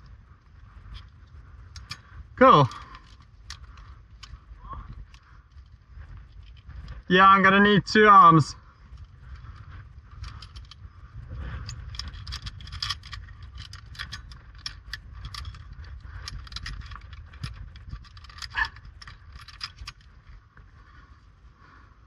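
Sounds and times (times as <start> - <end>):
metal carabiners clinking: 0.7 - 20.4.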